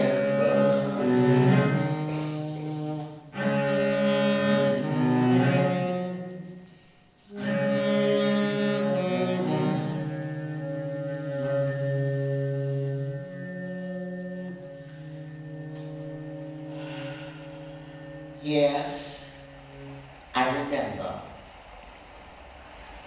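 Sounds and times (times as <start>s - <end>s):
cello playing long notes: 0.0s - 21.6s.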